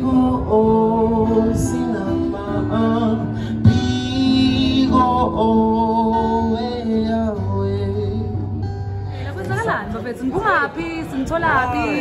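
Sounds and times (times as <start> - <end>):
guitar accompaniment: 0.0 - 12.0.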